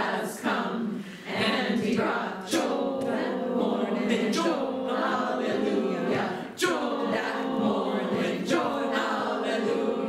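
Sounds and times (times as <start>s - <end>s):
choir singing a cappella: 0.0s - 10.0s.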